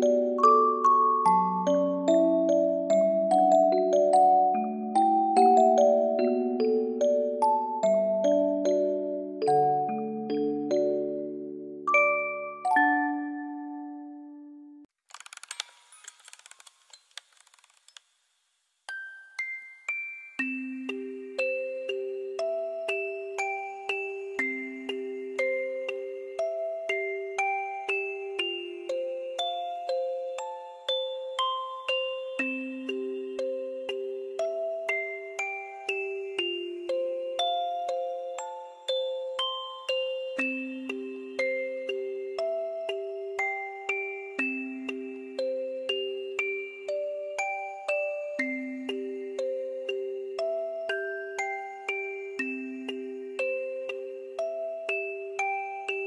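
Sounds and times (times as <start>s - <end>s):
music box clockwork ticking: 18.9s - 56.0s.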